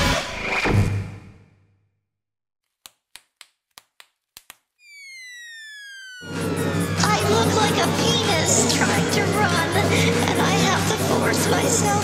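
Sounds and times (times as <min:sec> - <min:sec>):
synthesized tone sliding down: 0:04.8 - 0:09.1
electronic music: 0:04.8 - 0:12.0
loud music with heavy bass: 0:06.3 - 0:12.0.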